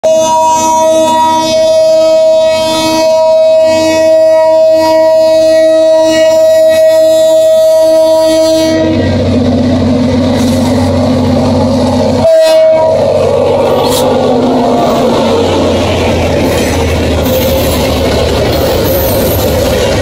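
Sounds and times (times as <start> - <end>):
locomotive air horn: 0.0 - 9.4, 12.0 - 15.3
locomotive engine rumble: 5.2 - 20.0
wheels on rails: 8.8 - 20.0.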